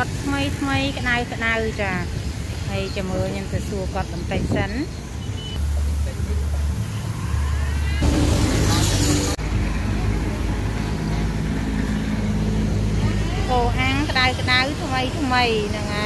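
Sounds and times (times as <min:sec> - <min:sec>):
people talking: 0:00.0 - 0:02.1, 0:02.7 - 0:04.9, 0:13.0 - 0:16.0
vehicle engine humming: 0:02.8 - 0:16.0.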